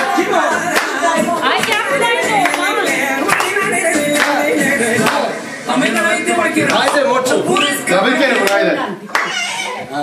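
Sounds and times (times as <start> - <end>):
hand claps: 0.0 - 1.0, 1.6 - 2.7, 3.3 - 4.4, 8.3 - 9.3
people talking loudly: 0.0 - 10.0.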